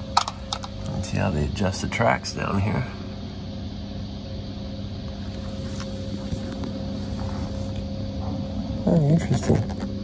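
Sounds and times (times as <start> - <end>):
low hum with steady tones: 0.0 - 10.0.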